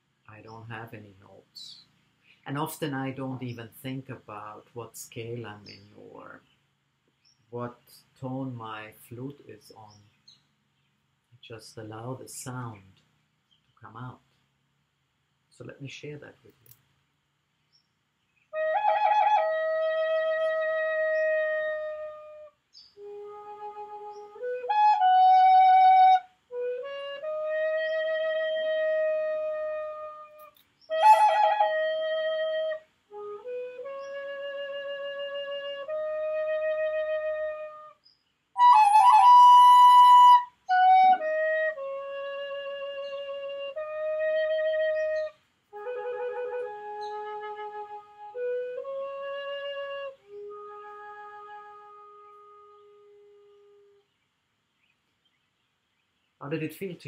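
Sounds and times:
wooden flute playing slowly: 0:18.5 - 0:54.1.

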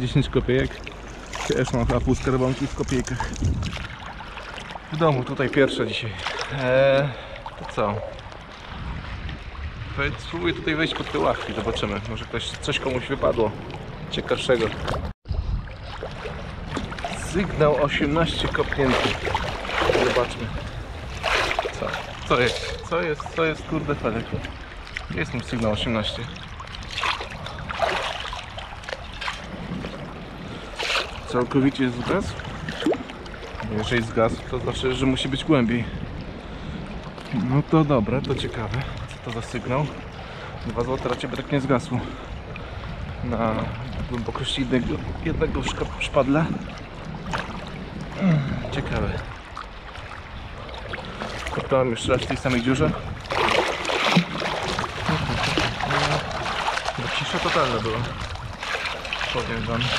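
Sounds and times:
water sloshing and splashing: 0:00.0 - 0:59.9.

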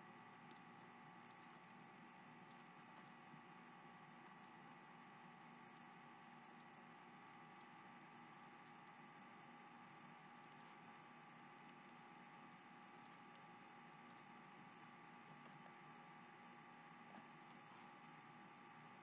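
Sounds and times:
electrical hum: 0:00.0 - 0:19.0
faint small clicks: 0:00.4 - 0:01.8, 0:02.4 - 0:03.2, 0:04.2 - 0:04.9, 0:05.6 - 0:05.9, 0:06.5 - 0:06.8, 0:07.4 - 0:09.1, 0:10.4 - 0:15.8, 0:17.0 - 0:19.0.

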